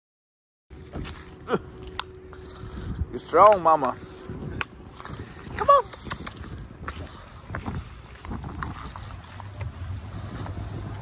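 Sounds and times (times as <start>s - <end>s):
low steady hum: 0.7s - 11.0s
footsteps on asphalt: 0.8s - 11.0s.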